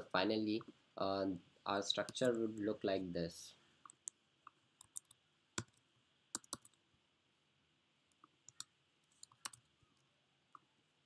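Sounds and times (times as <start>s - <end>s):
keyboard and mouse clicks: 3.8s - 5.8s, 6.4s - 6.8s, 8.1s - 9.7s.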